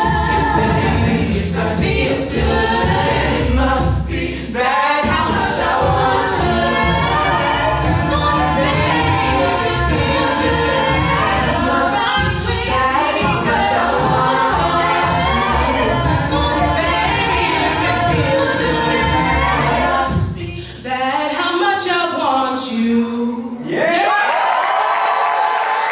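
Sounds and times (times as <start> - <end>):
woman singing lead vocal: 0.0 - 23.7
backing voices singing: 0.0 - 23.8.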